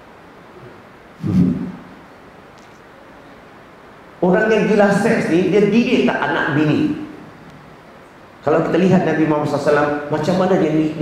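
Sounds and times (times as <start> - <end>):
short low vocal sound: 0.6 - 1.9.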